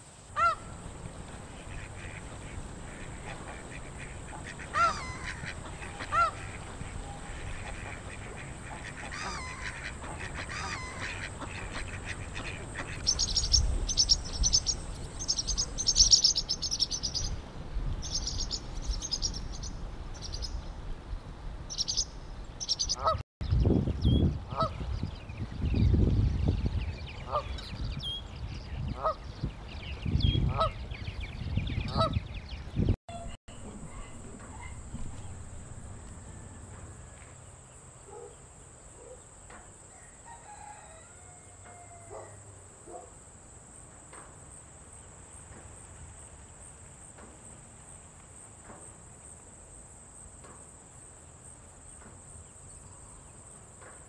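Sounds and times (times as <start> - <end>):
geese honking: 0.4 - 13.2, 22.9 - 23.2, 33.2 - 37.1
low rumbling: 29.6 - 37.2.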